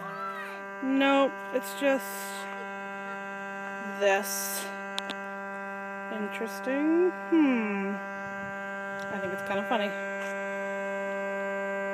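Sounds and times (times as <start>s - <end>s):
low steady drone: 0.0s - 11.9s.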